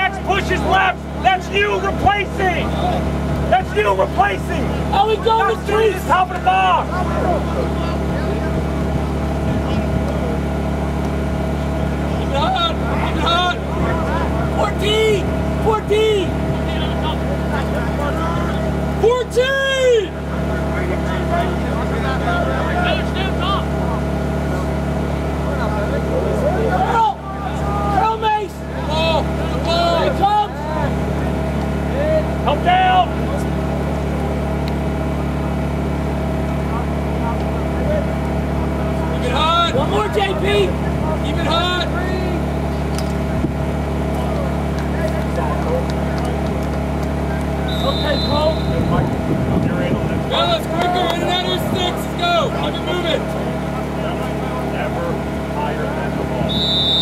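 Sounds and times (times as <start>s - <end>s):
players shouting: 0.0s - 35.8s, 36.6s - 49.1s, 50.2s - 55.6s
steady low hum: 0.0s - 57.0s.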